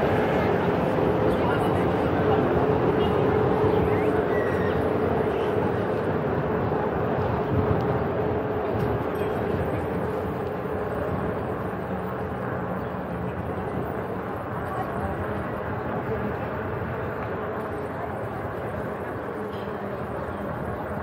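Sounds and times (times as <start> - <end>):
distant voices: 0.0 - 21.0.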